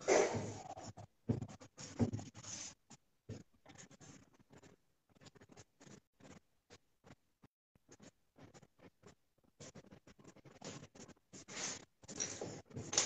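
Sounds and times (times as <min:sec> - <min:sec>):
pencil scratching on paper: 0:00.0 - 0:07.2.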